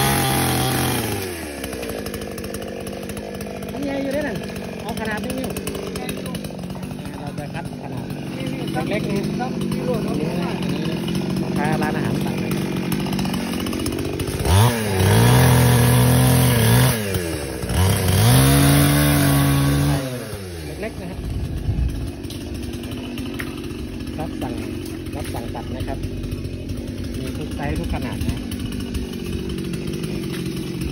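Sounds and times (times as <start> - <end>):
chainsaw revving: 0.0 - 30.9.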